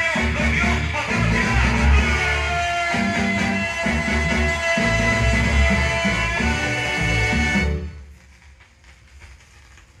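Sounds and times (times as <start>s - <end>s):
vinyl surface crackle and ticks: 7.7s - 10.0s.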